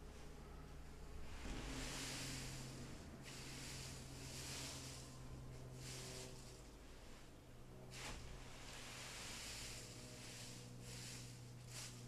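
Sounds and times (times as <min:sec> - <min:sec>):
rake pushing rustling hops: 0:01.2 - 0:12.0.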